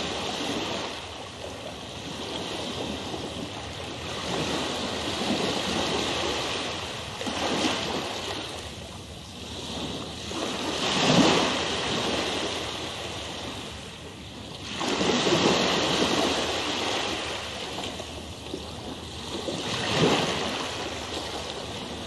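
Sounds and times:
ocean waves washing in: 0.0 - 22.0.

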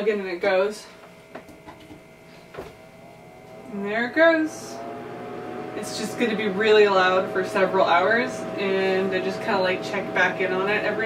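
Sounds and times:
fan motor humming: 0.0 - 11.0.

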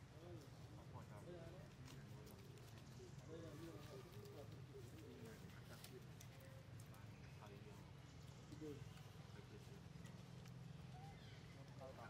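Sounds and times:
faint indistinct voices: 0.0 - 12.0.

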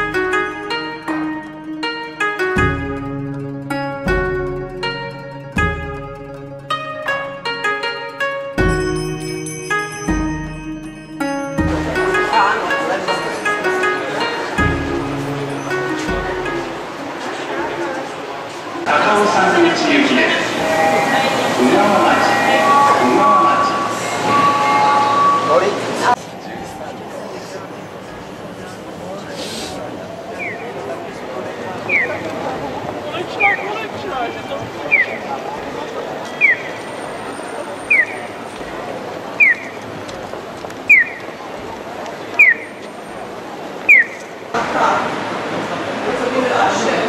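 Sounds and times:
crowd and street noise: 0.0 - 47.0
electronic chime notes: 5.1 - 16.9, 20.4 - 26.1
passengers' voices and movement: 10.5 - 47.0
electronic bird-like chirp: 42.4 - 42.8, 43.9 - 44.2.

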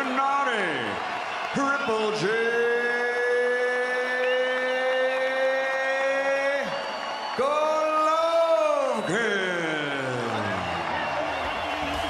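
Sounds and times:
crowd cheering: 0.0 - 12.0.

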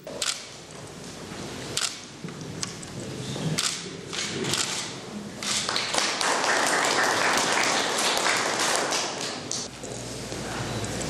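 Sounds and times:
large hall ambience: 0.0 - 11.0
camera shutter clicks: 0.2 - 0.5, 1.8 - 2.0, 3.6 - 5.7.

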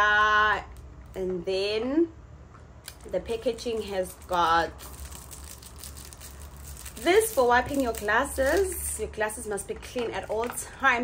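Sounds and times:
foil sachet rustling: 2.9 - 8.8.

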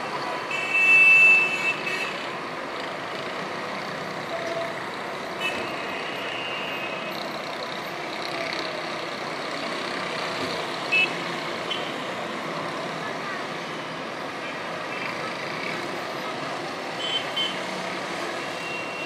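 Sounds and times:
distant street traffic: 0.0 - 19.0.

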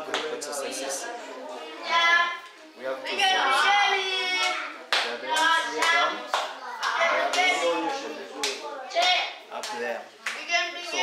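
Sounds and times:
hands clapping in rhythm: 0.0 - 0.4, 4.4 - 7.7, 8.4 - 10.5.

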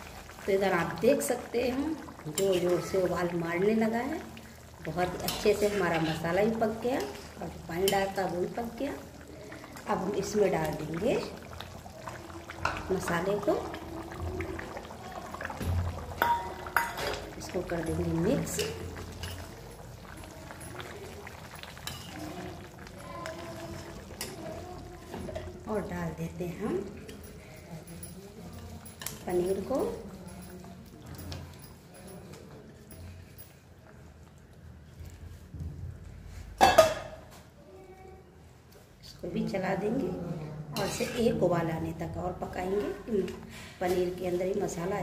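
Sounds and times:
gravy bubbling: 0.0 - 27.5.

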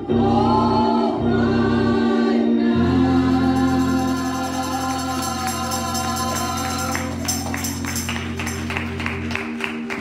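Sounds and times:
choir singing long notes: 0.0 - 7.5.

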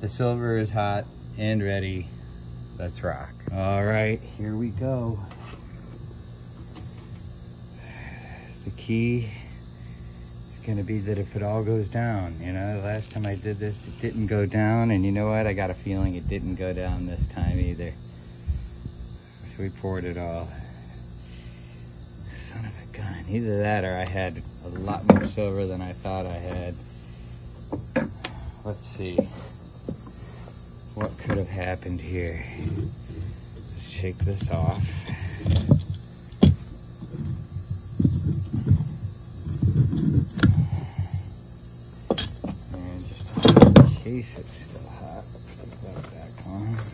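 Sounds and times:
high-pitched hiss: 0.0 - 46.9
high-pitched insect chirring: 0.0 - 46.9
low electrical hum: 0.0 - 46.9.

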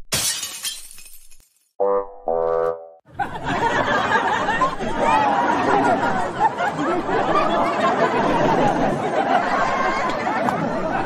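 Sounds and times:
car crash with breaking glass: 0.1 - 1.4.

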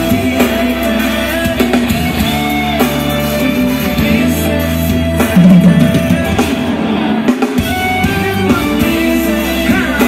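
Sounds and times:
live pop music over pa: 0.0 - 10.0.

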